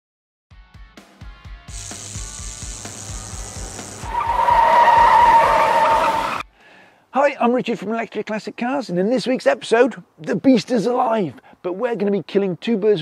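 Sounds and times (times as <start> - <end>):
music with fast bass beat: 0.8 - 4.1
tyre screech sound effect: 4.0 - 6.4.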